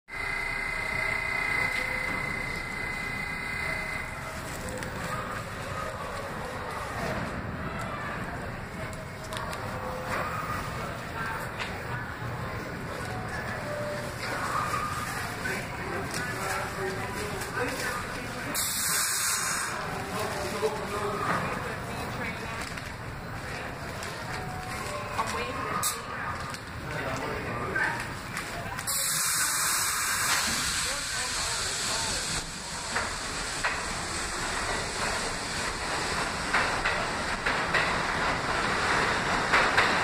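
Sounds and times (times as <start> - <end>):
train hum and rumble: 0.1 - 40.0.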